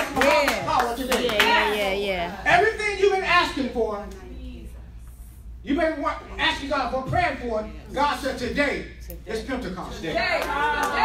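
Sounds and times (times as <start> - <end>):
hand clapping: 0.0 - 1.8.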